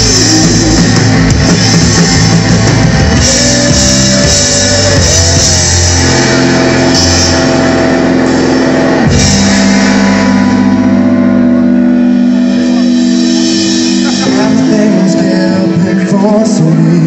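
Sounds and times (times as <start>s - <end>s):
blues-rock band playing: 0.0s - 17.0s.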